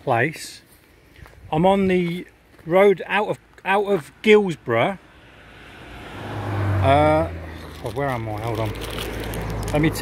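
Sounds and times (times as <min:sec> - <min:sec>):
vehicle tyre and engine noise: 0:00.7 - 0:10.0
low engine hum: 0:05.0 - 0:10.0.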